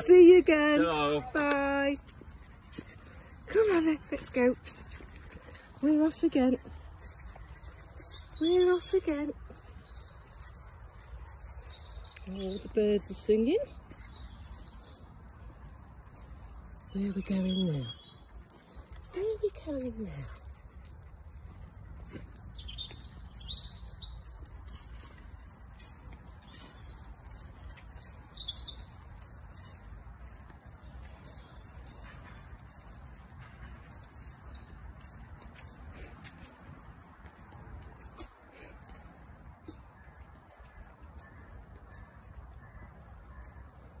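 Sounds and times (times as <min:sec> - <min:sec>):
birds chirping: 0:00.0 - 0:44.0.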